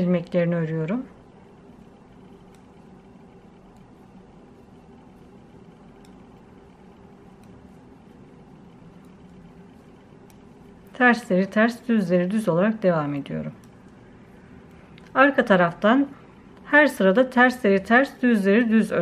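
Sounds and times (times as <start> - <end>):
low steady hum: 0.0 - 19.0
faint ticks: 5.7 - 6.4, 9.0 - 10.5.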